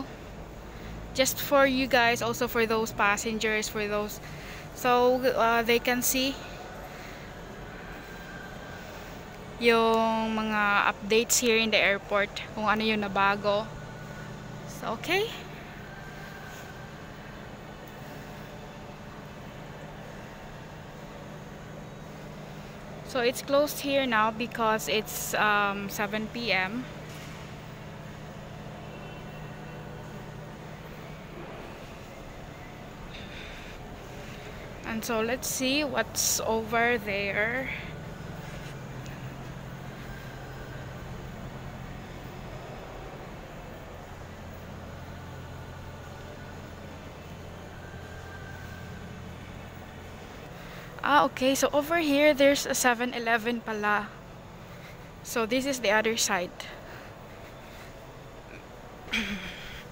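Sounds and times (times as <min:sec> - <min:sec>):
ventilation hum and hiss: 0:00.0 - 0:59.9.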